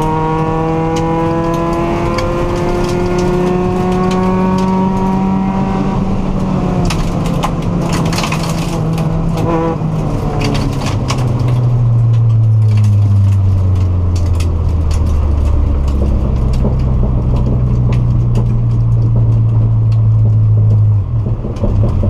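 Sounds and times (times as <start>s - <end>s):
car engine pulling hard: 0.0s - 22.0s
gravel clattering against car underside: 0.9s - 5.4s, 6.3s - 22.0s.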